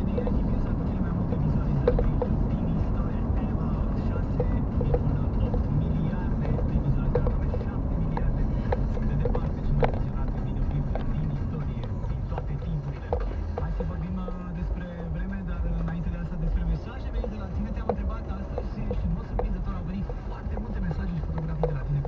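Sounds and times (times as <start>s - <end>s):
small clicks and rattles: 0.0s - 14.5s
car engine and road rumble: 0.0s - 22.0s.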